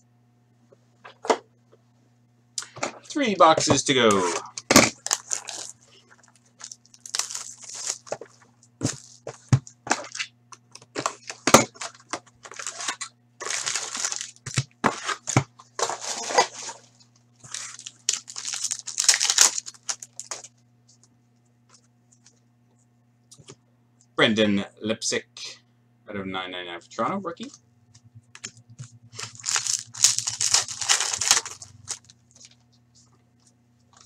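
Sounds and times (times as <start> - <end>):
foil packs tearing and crinkling: 4.1 - 16.8, 17.4 - 20.5, 29.1 - 32.6.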